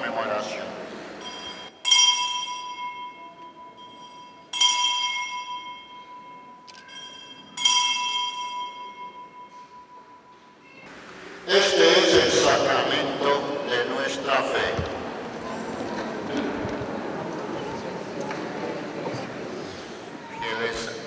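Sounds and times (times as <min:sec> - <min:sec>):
bell ringing: 0:01.2 - 0:10.4.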